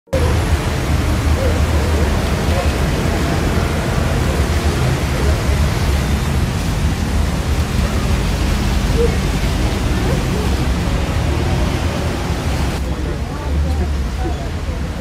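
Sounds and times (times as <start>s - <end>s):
deep rumbling noise: 0.1s - 14.7s
faint voices: 0.1s - 15.0s.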